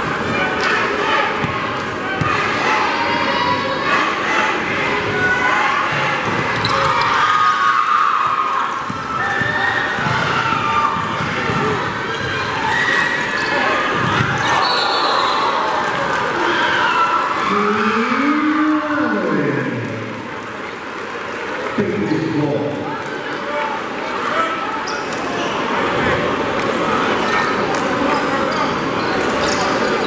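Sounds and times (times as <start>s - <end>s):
crowd shouting and chatter: 0.0s - 30.0s.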